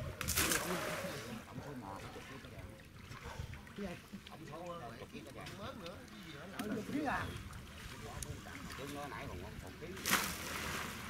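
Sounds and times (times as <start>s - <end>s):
water splash: 0.0s - 4.4s, 9.8s - 11.0s.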